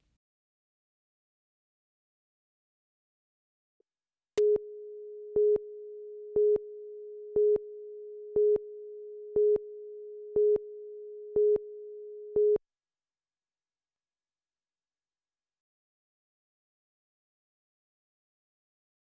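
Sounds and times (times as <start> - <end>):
countdown beeps: 4.4 - 12.6.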